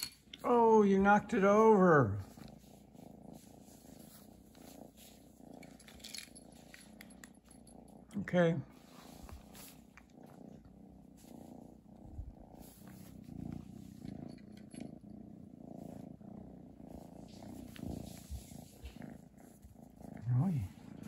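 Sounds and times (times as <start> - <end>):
kitten purring: 0.0 - 21.0.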